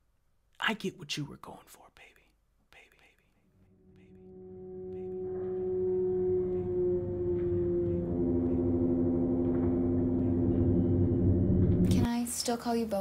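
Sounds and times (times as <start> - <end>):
dark droning music: 3.6 - 12.1.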